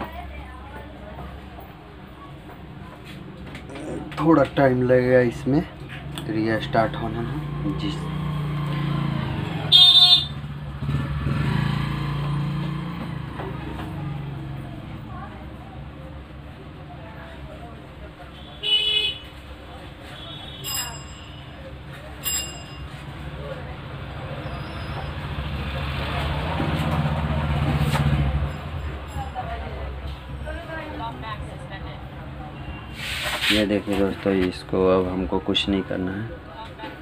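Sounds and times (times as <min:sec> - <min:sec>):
vehicle engine rumbling: 0:05.8 - 0:17.2, 0:21.6 - 0:34.5
horn toot: 0:09.7 - 0:10.4.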